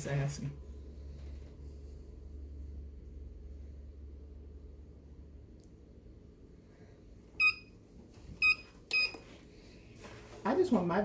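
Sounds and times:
high electronic timer beeps: 7.4s - 7.7s.

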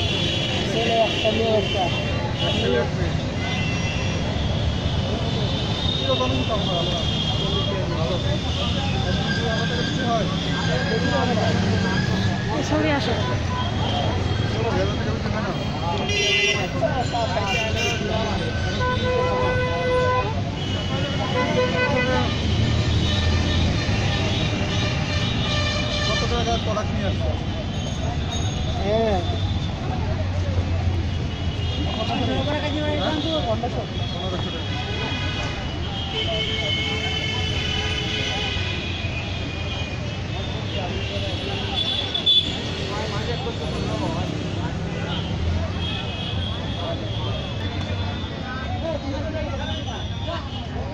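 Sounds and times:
street traffic rumble: 0.0s - 50.9s
voices: 0.0s - 50.9s
people talking: 5.2s - 22.4s, 40.4s - 50.9s.

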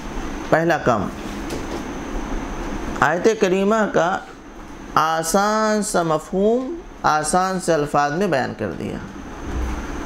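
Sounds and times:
room rumble with hiss: 0.0s - 10.0s.

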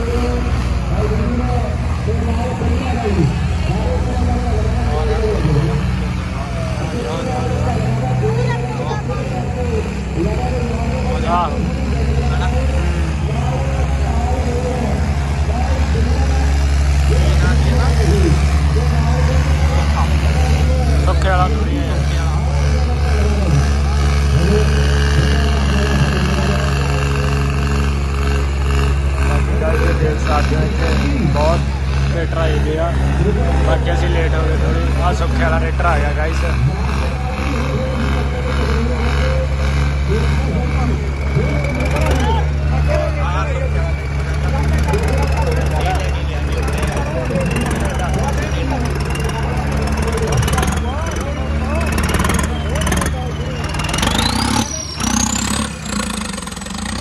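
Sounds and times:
diesel engines rumbling: 0.0s - 57.0s
many people's voices: 0.0s - 57.0s.

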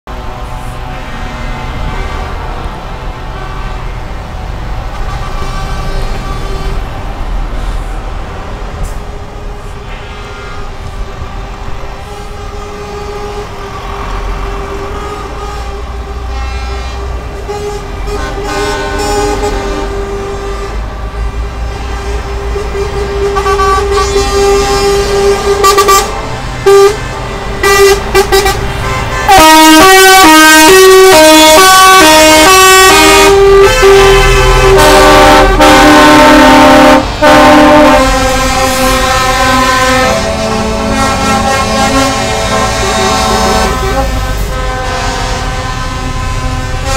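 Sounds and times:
diesel truck engines passing: 0.1s - 46.9s
truck air horn blasts: 0.5s - 2.7s, 3.3s - 4.2s, 4.8s - 7.0s, 8.8s - 11.3s, 12.0s - 46.9s.

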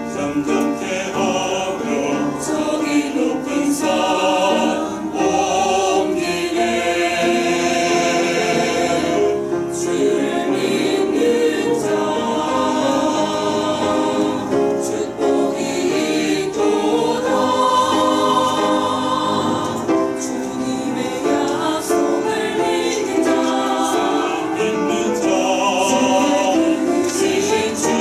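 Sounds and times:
church choir singing: 0.0s - 28.0s.

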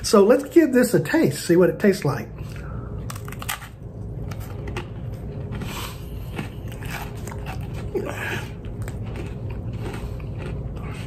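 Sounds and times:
crisp crunching while chewing: 2.6s - 11.0s.

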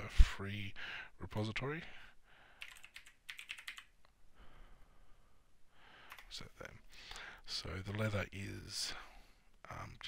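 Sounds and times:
faint keyboard typing: 2.6s - 4.1s, 6.0s - 6.5s.

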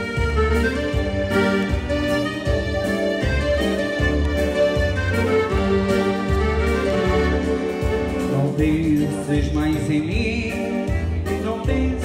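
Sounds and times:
accordion playing dance tune: 0.0s - 12.0s.

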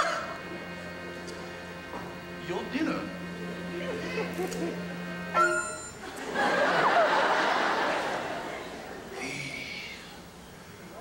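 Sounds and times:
orchestra holding a chord: 0.0s - 6.2s.

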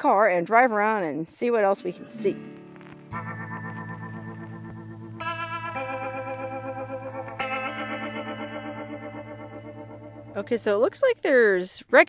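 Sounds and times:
sustained wavering chords: 1.8s - 10.9s.

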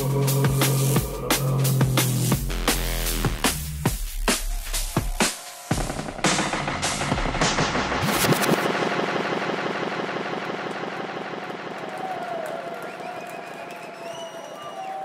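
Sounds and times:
drum and bass music: 0.0s - 14.1s
crowd clapping and cheering: 8.1s - 15.0s
whoops from crowd: 11.8s - 15.0s.

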